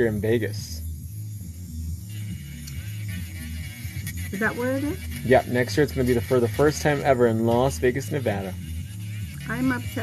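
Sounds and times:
faint music: 0.0s - 10.0s
electric nail drill humming: 1.1s - 10.0s.

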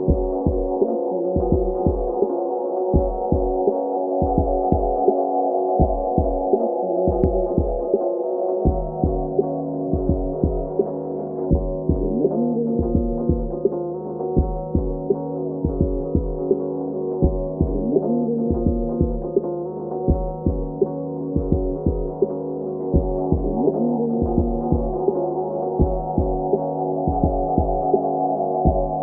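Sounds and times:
muffled hip-hop music: 0.0s - 29.0s.

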